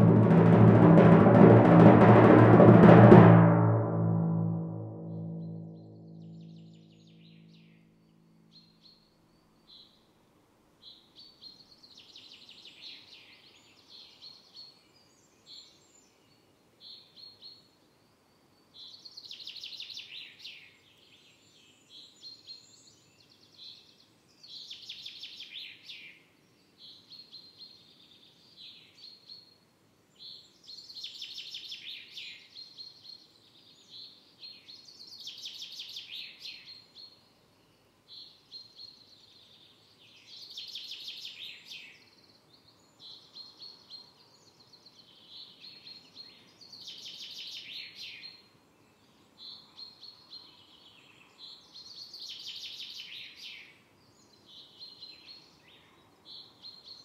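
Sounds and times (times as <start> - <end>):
songbird singing: 0.0 - 10.1, 10.8 - 57.0
faint outdoor background noise: 0.0 - 57.0.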